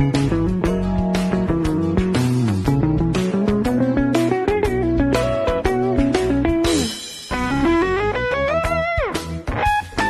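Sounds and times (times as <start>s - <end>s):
electric guitar soul groove: 0.0s - 10.0s.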